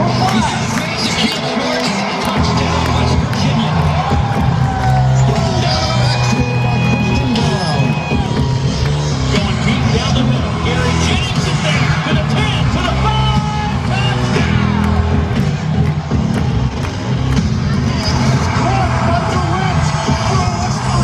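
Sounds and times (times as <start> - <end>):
crowd voices: 0.0 - 21.0
music over stadium loudspeakers: 0.0 - 21.0.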